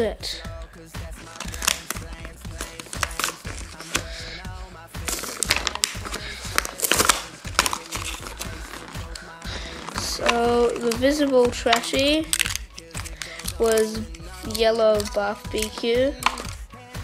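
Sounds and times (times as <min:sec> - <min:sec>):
faint music: 0:00.0 - 0:17.0
plastic packaging crackling: 0:01.1 - 0:04.4, 0:05.0 - 0:16.6.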